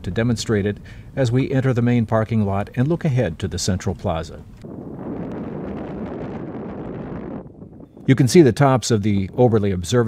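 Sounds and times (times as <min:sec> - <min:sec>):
wind gust on microphone: 0:03.0 - 0:09.8.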